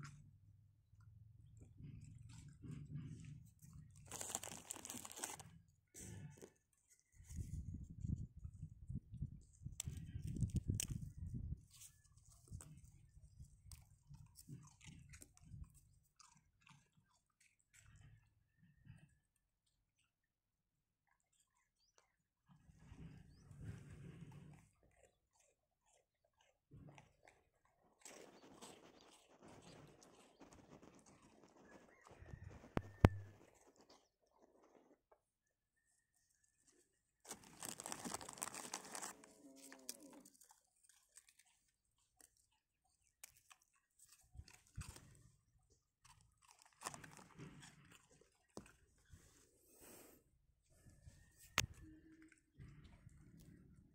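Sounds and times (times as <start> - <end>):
dogs chewing and crunching food: 0.0 - 8.4, 9.2 - 53.9
plastic packet crinkling: 4.0 - 5.4, 37.3 - 40.4.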